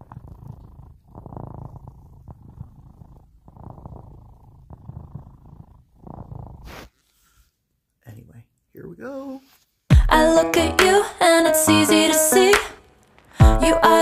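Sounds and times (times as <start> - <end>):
cat purring: 0.0 - 7.0.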